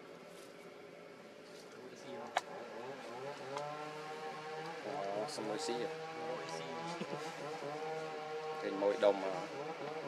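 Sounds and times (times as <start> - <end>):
steady engine hum: 0.0 - 10.0
people talking: 1.8 - 2.6, 4.8 - 7.2, 8.6 - 9.5.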